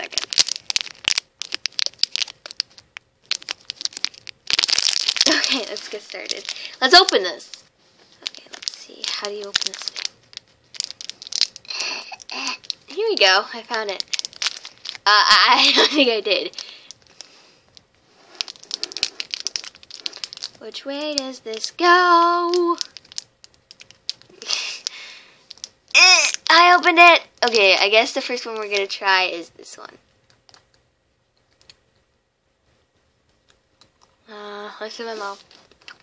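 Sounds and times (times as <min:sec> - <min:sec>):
plastic candy packet crinkling: 0:00.0 - 0:30.8, 0:34.8 - 0:36.0.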